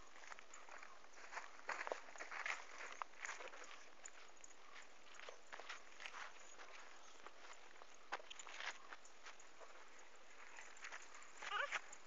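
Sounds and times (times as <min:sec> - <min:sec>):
footsteps through dry leaves: 0:00.1 - 0:12.0.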